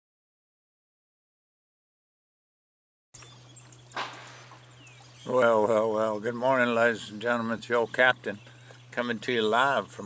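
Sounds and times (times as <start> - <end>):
electric trolling motor humming: 3.2 - 10.0
sharp knock: 4.0 - 4.6.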